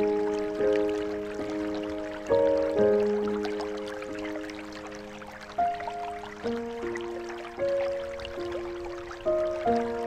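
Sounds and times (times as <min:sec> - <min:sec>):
faint trickling water: 0:00.0 - 0:10.0
soft solo piano: 0:00.0 - 0:10.0.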